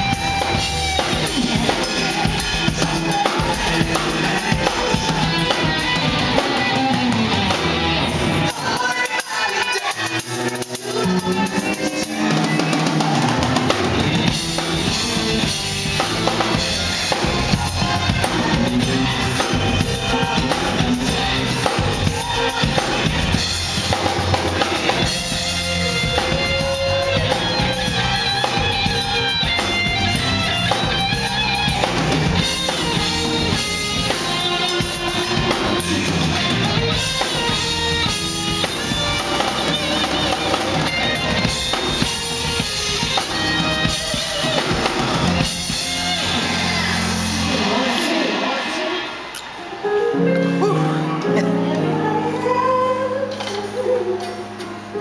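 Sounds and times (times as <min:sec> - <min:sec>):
live band instrumental groove: 0:00.0 - 0:55.0.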